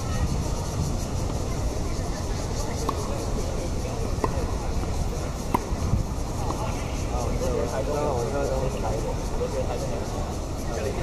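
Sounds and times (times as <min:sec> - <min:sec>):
racket hitting tennis ball: 0:02.7 - 0:03.5, 0:04.1 - 0:06.9.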